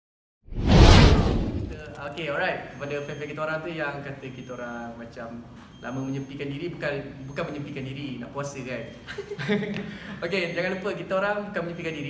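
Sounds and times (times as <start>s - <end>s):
low whoosh: 0.5s - 1.9s.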